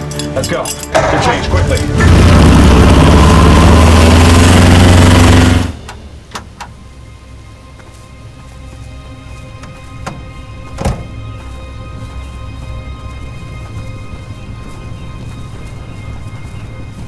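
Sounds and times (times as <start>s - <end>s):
held music tones: 0.0s - 17.0s
truck engine rumbling: 0.0s - 17.0s.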